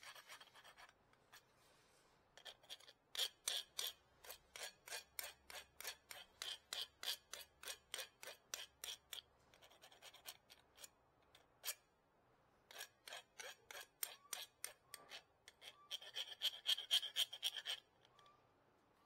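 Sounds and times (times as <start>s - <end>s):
hand file rasping on brake pad: 2.4s - 10.9s, 12.7s - 17.9s.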